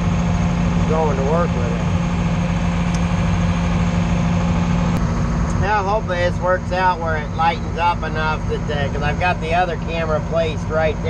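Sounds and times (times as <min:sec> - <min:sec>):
diesel engine droning: 0:00.0 - 0:11.0.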